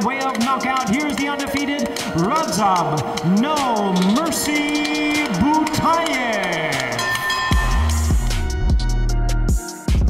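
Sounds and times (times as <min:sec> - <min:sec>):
announcer calling: 0:00.0 - 0:08.2
heavy electronic bass beat: 0:00.0 - 0:10.0
music: 0:00.0 - 0:10.0.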